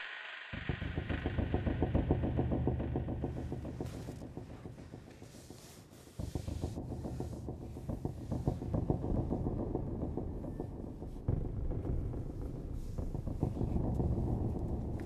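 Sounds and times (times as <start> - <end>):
low fluttering rumble: 0.0 - 15.0.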